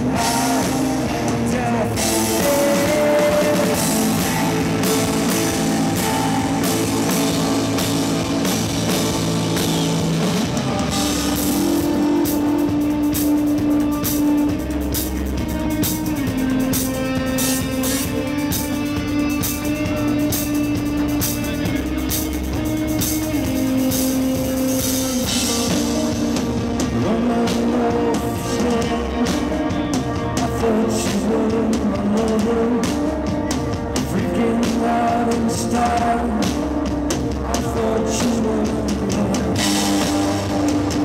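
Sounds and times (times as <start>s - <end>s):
drum kit with cymbals: 0.0s - 41.0s
electric guitars holding chords: 0.0s - 41.0s.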